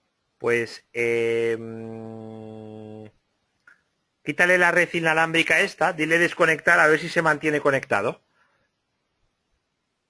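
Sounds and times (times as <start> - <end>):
man's drawn-out hesitation sound: 0.4 - 3.2.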